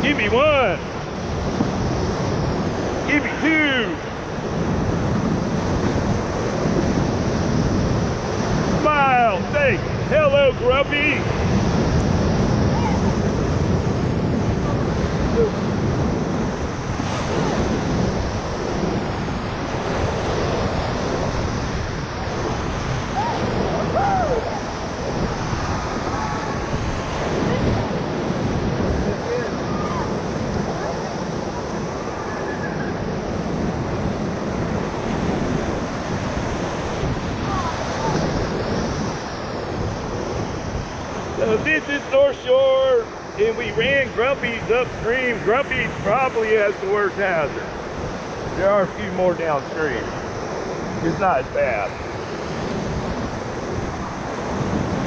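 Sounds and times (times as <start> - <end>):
whitewater rapids rushing: 0.0 - 55.0.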